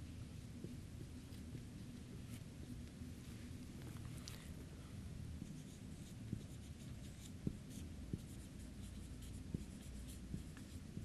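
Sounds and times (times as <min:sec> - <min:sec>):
low room hum: 0:00.0 - 0:11.0
marker writing on whiteboard: 0:05.4 - 0:11.0.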